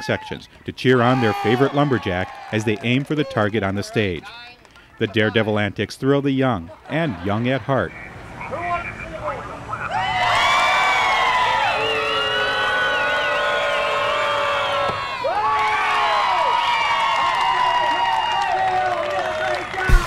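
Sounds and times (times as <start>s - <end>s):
crowd cheering and yelling: 0.0s - 4.2s, 8.5s - 20.0s.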